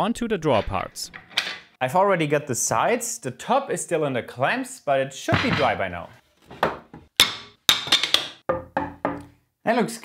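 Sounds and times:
wooden knocks and clacks: 6.5 - 9.3.

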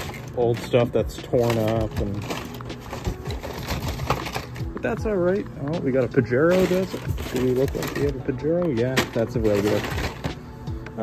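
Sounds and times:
cardboard and plastic packs rustling: 0.0 - 11.0.

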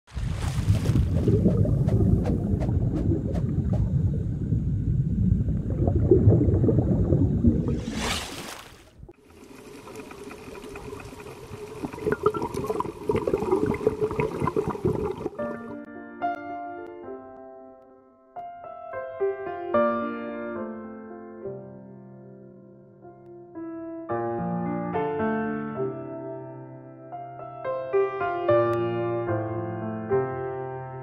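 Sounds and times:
underwater bubbling rumble: 0.1 - 8.1, 8.8 - 15.4
soft piano music: 15.4 - 31.0.

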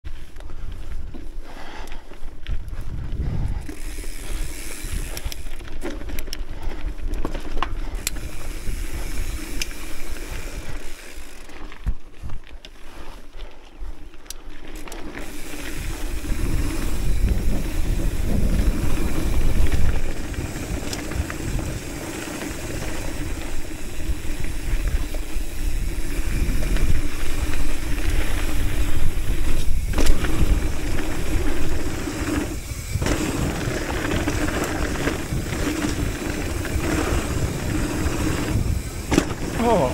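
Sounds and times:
bike clicks and rattles: 0.1 - 39.9
bike tyres crunching on rocky dirt: 0.1 - 39.9.

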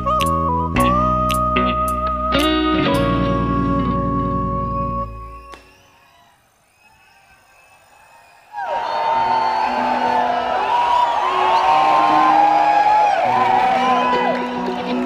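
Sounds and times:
bass notes: 0.0 - 5.5
audience whooping and cheering: 5.3 - 15.0.

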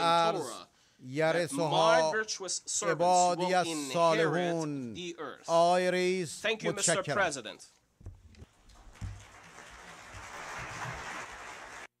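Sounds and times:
audience applauding: 8.7 - 12.0.

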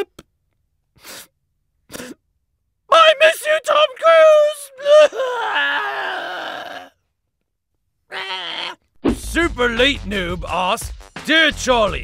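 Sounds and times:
cartoon voice sobbing: 2.9 - 6.9
cartoon voice wailing: 8.1 - 8.8.

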